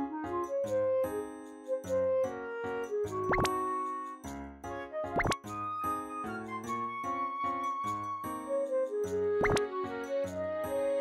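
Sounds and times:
light bouncy background music: 0.0s - 11.0s
rising bloop sound effects: 3.3s - 3.6s, 5.1s - 5.4s, 9.4s - 9.6s.

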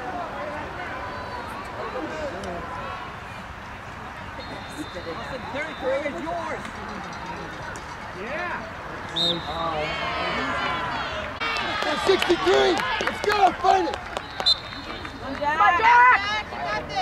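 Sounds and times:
people shouting and calling out: 8.2s - 14.0s, 15.2s - 17.0s.

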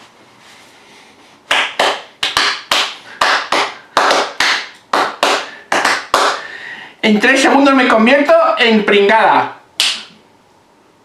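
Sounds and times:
person clapping hands: 1.5s - 6.5s, 9.8s - 10.2s.

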